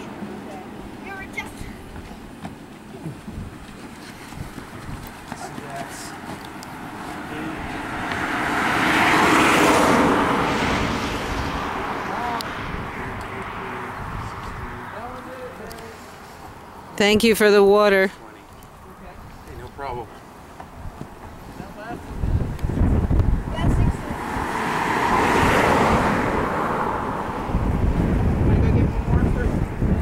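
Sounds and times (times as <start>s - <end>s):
road vehicle passing by: 0.0s - 30.0s.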